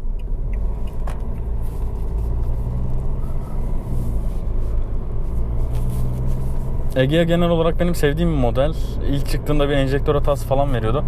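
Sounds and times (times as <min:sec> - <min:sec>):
diesel car engine drone: 0:00.0 - 0:11.0
tyre and road rumble: 0:00.0 - 0:11.0.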